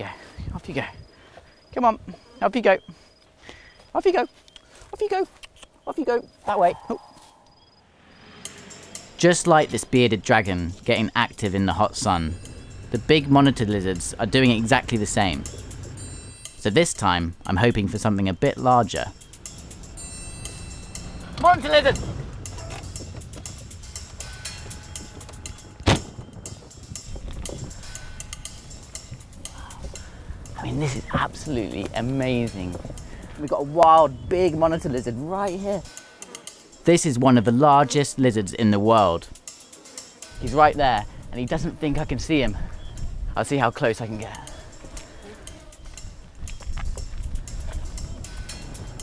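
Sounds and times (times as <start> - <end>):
vehicle engine rumble: 7.9 - 35.4
wind rumble on microphone: 21.9 - 33.5, 40.4 - 43.4, 45.8 - 49.0.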